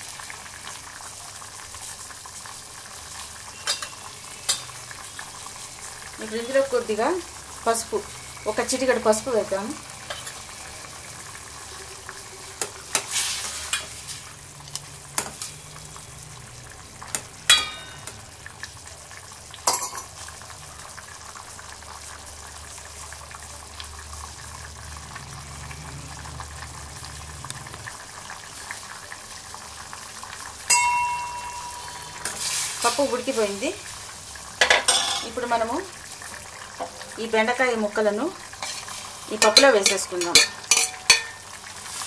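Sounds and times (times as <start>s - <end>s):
lentils bubbling in a pot: 0.0s - 42.0s
steel ladle clinking pot: 3.6s - 4.8s, 17.5s - 18.2s, 19.7s - 20.1s, 30.7s - 32.6s, 34.6s - 35.4s, 38.6s - 41.4s.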